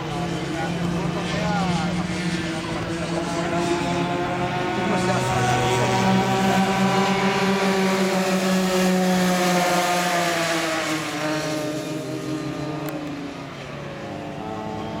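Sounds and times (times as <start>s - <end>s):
go-kart engines revving high: 0.0s - 15.0s.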